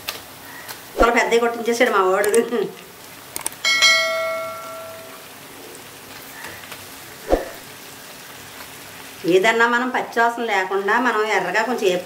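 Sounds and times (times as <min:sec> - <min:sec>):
bell chime: 0:03.6 - 0:05.2.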